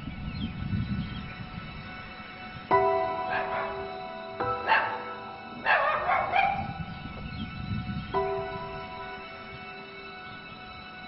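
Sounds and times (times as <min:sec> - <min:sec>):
background music: 0:00.0 - 0:11.0
small dog barking: 0:03.2 - 0:06.9.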